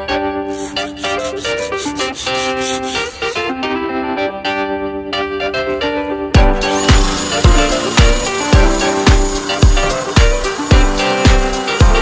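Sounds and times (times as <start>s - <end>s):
piano music: 0.0s - 12.0s
sandpaper rubbing on metal: 0.5s - 3.5s.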